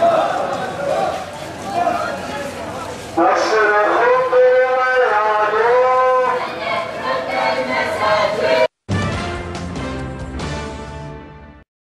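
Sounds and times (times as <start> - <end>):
person chanting a slogan: 3.2 - 8.7.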